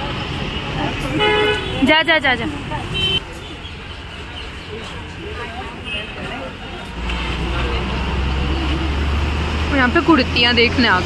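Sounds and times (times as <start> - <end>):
road traffic: 0.0 - 11.0
vehicle horn honk: 1.1 - 1.8, 3.0 - 3.6.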